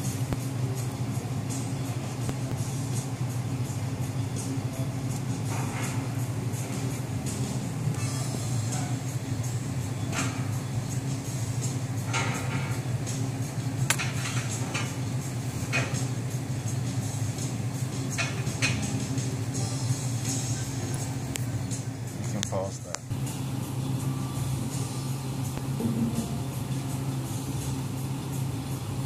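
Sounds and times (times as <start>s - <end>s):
low hum: 23.1s - 29.0s.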